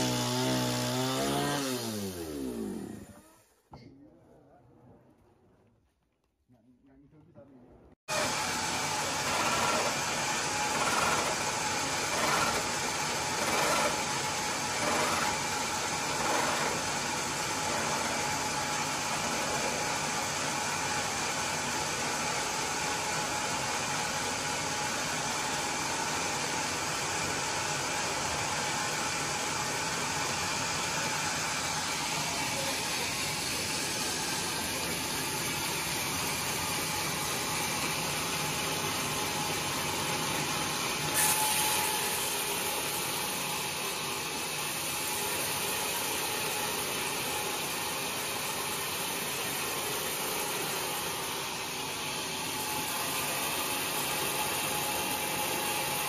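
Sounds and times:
sawmill machinery drone: 0.0s - 3.5s, 8.1s - 56.0s.

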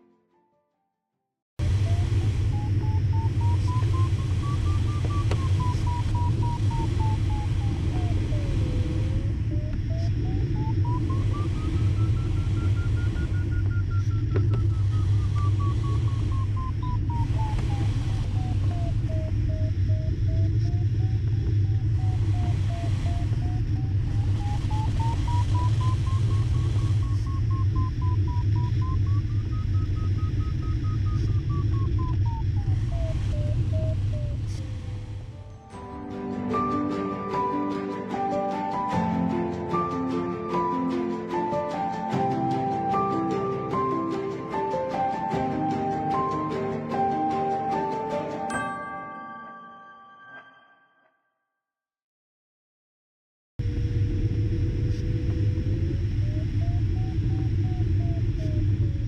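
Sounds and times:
cockpit airflow noise: 1.6s - 35.5s
variometer beeping: 1.7s - 35.3s.

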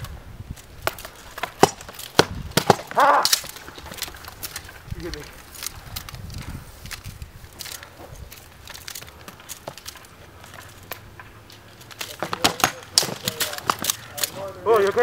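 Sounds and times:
practice swords striking shields: 0.8s - 3.7s, 12.0s - 15.0s.

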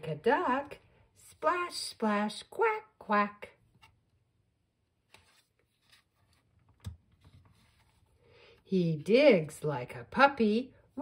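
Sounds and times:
light scratches of book handling: 5.0s - 8.2s.

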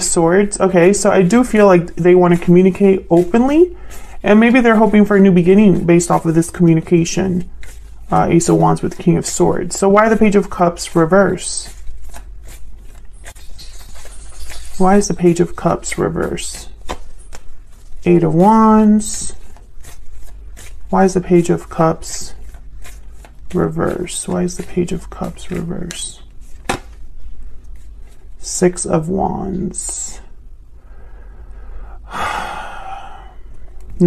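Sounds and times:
cards being shuffled: 0.0s - 28.9s
low steady hum: 0.0s - 34.0s
card snap: 26.6s - 27.0s.

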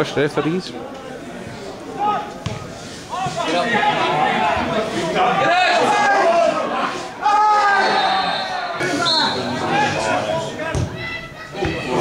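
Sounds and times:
men shouting: 3.1s - 10.3s.

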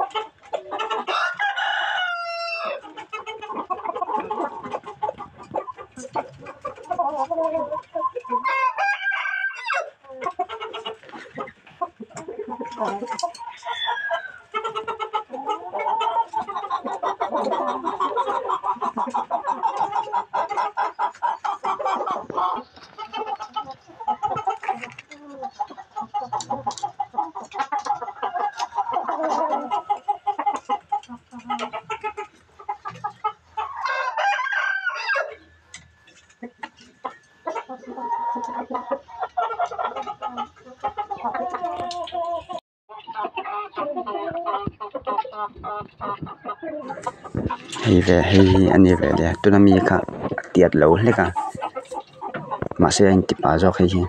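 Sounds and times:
chickens clucking: 0.0s - 54.0s
high-pitched chicken call: 0.6s - 11.5s, 12.6s - 26.9s, 32.9s - 35.9s.

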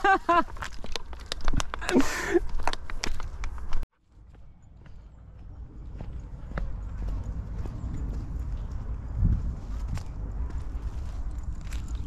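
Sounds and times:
dry leaves and twigs crackling: 0.0s - 3.8s, 5.9s - 12.0s
footsteps on dirt trail: 0.0s - 12.0s
low rumble: 4.0s - 12.0s.

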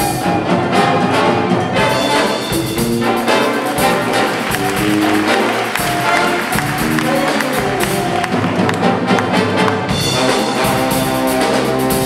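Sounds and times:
big band jazz: 0.0s - 12.0s
drum and cymbal hits: 1.9s - 12.0s.

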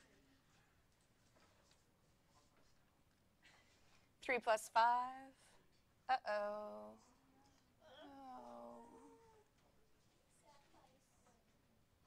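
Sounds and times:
woman saying oh: 7.9s - 9.3s.

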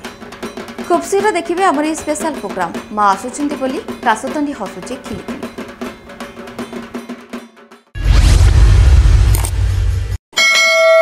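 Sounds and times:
whoosh with deep rumble: 8.0s - 10.2s
notification bell ding: 10.4s - 11.0s.

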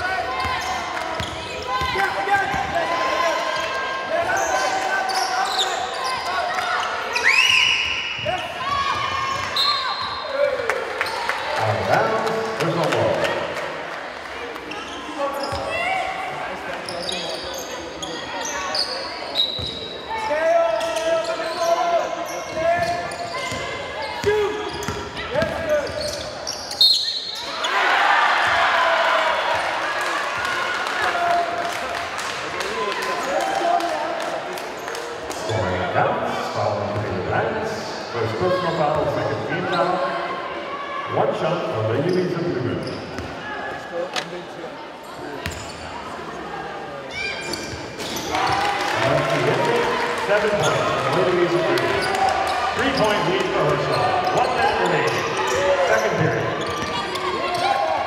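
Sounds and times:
shoes squeaking on floor: 14.7s - 15.9s, 16.8s - 27.8s, 42.0s - 43.4s, 45.0s - 46.1s, 47.1s - 48.4s, 50.6s - 57.8s.

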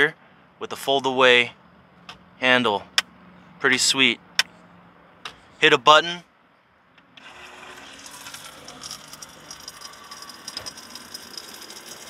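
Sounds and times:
small water pump running: 7.2s - 12.0s.

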